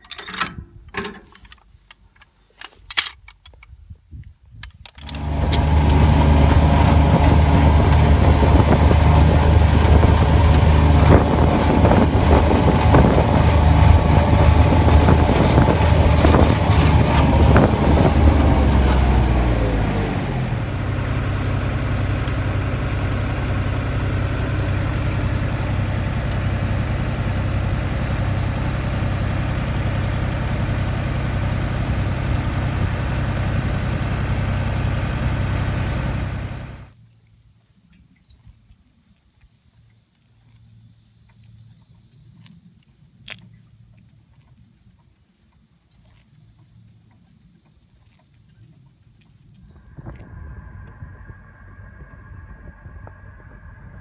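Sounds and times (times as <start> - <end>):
tractor diesel engine running: 5.0 - 37.0, 49.6 - 54.0.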